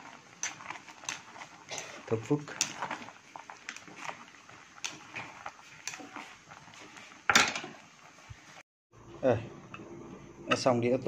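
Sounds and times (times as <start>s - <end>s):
stew boiling in a pot: 0.0s - 11.0s.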